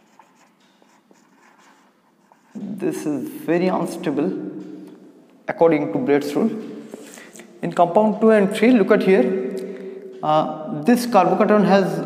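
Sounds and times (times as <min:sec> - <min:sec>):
marker pen on whiteboard: 0:00.0 - 0:05.1.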